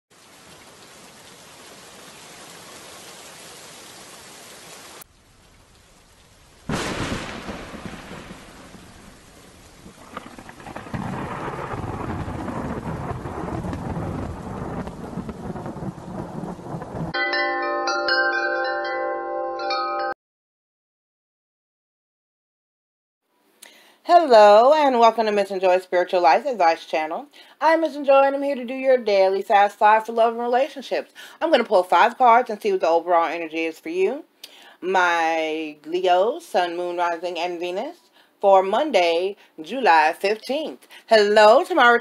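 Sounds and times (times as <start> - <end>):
steady rain: 0.1 - 17.2
thunderclap and rumble: 5.2 - 17.2
chimes ringing: 17.2 - 20.1.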